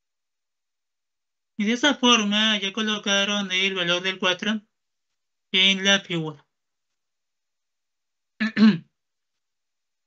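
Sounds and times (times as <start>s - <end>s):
person clearing throat: 8.4s - 8.9s.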